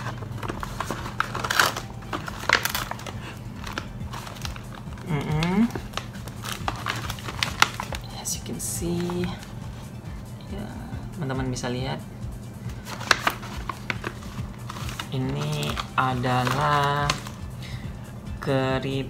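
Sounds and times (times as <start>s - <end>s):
snack bag tearing and crinkling: 0.0s - 9.5s, 12.7s - 17.5s.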